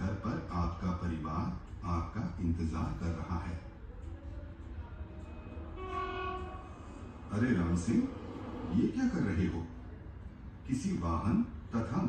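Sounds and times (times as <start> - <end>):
truck horn through tv speaker: 5.7 - 7.1.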